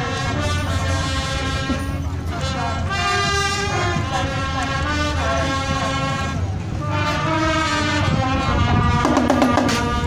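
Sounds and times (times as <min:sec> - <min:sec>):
marching band brass horns: 0:00.0 - 0:10.0.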